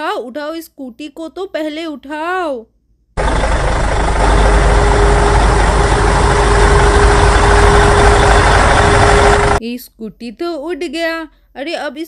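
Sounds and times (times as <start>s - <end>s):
heavy machinery engine rumbling: 3.2s - 9.6s
steady hum tone: 3.2s - 9.6s.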